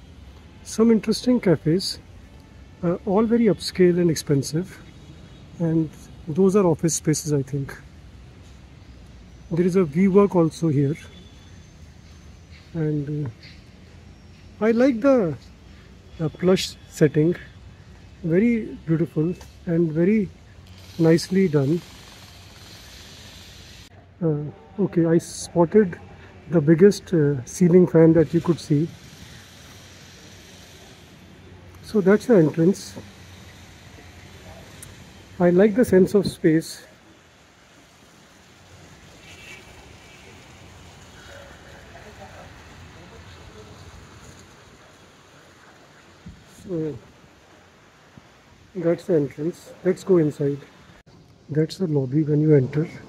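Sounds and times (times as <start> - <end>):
background hiss: 0.0 - 53.0.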